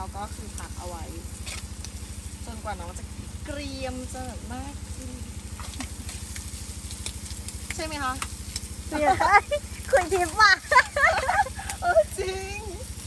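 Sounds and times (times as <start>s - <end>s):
steady low hum: 0.0s - 13.0s
meat sizzling in a frying pan: 5.4s - 13.0s.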